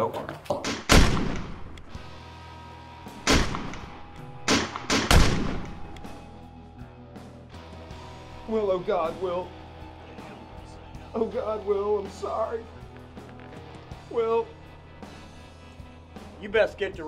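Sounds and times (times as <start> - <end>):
gunshots with ringing tail: 0.7 - 1.8, 3.2 - 6.3
steady music tone: 1.9 - 17.0.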